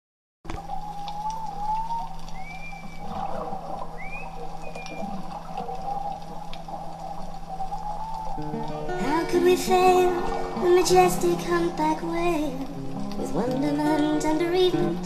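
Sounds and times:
whale song: 0:00.5 - 0:15.0.

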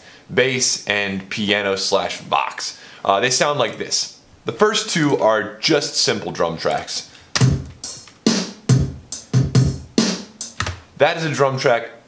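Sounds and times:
programmed drum beat: 0:06.0 - 0:11.3.

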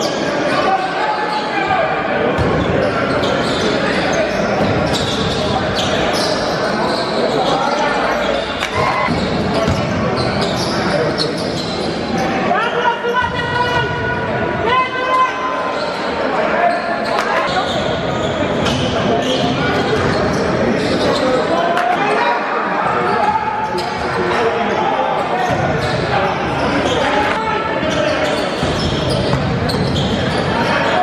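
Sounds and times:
crowd chatter: 0:00.0 - 0:31.0
basketball bouncing on court: 0:09.1 - 0:10.5, 0:28.6 - 0:30.4.

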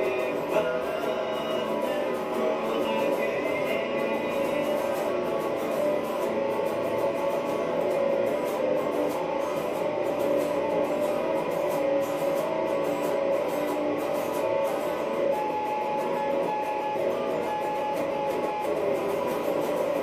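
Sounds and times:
electric guitar playing blues: 0:00.0 - 0:20.0.

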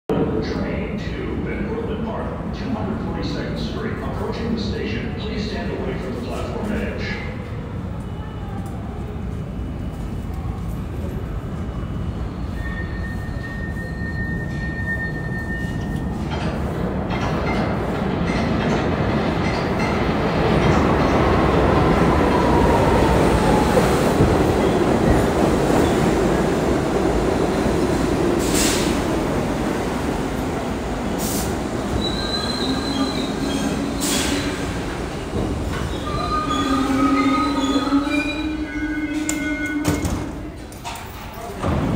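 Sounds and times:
subway train rumble: 0:00.1 - 0:41.9
train wheel squeal: 0:11.7 - 0:16.3, 0:32.0 - 0:34.6, 0:35.9 - 0:40.2
rail clacks: 0:15.9 - 0:38.1.

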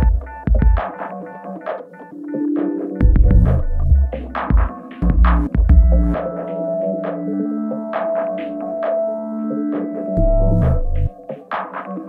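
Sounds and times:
steady synth tones: 0:02.2 - 0:11.1
deep bass line: 0:03.0 - 0:04.2, 0:05.0 - 0:06.2, 0:10.2 - 0:11.1.

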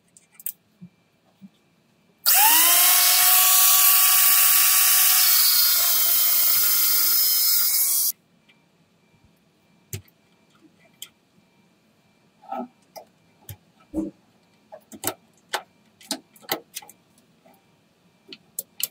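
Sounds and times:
angle grinder grinding steel: 0:02.3 - 0:08.1.

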